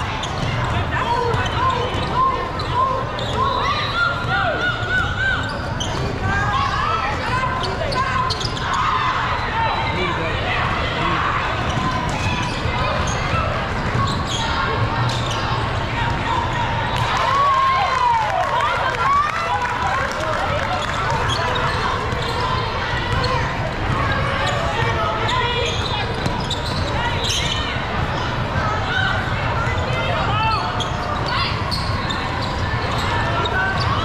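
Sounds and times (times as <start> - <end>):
shouts and chatter: 0.0 - 34.0
sneakers squeaking on court: 0.1 - 4.3, 4.9 - 6.3, 7.1 - 10.0, 11.0 - 17.1, 20.7 - 28.6, 29.2 - 34.0
basketball bouncing: 13.7 - 14.2.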